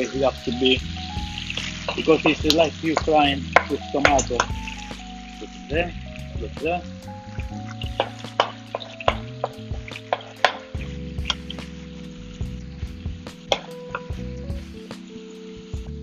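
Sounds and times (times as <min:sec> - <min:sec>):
tomatoes sizzling in oil: 0:00.0 - 0:16.0
sauce popping and spitting: 0:01.1 - 0:05.5, 0:06.2 - 0:11.8.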